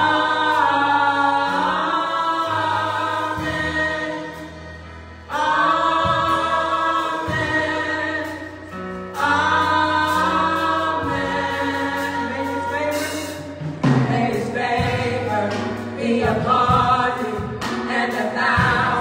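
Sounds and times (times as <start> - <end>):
choir singing in harmony: 0.0 - 19.0.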